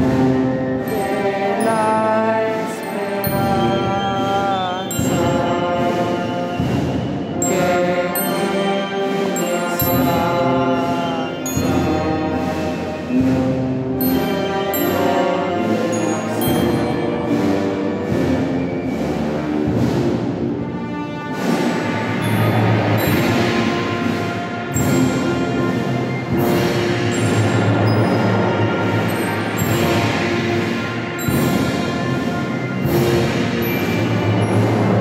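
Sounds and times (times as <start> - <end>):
band playing sustained chords: 0.0 - 35.0
percussion strokes: 0.0 - 35.0.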